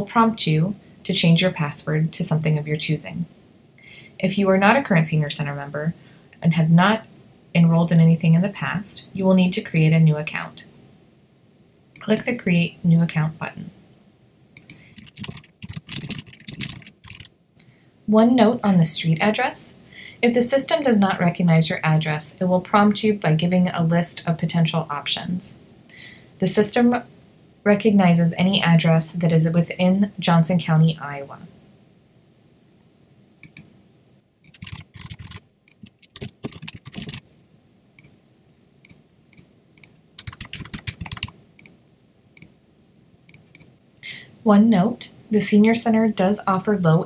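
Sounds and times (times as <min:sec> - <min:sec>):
mouse click: 0:14.6 - 0:14.9, 0:33.4 - 0:33.7, 0:43.3 - 0:43.7
typing on computer keyboard: 0:14.6 - 0:17.3, 0:33.4 - 0:33.7, 0:34.5 - 0:37.2, 0:39.8 - 0:41.7.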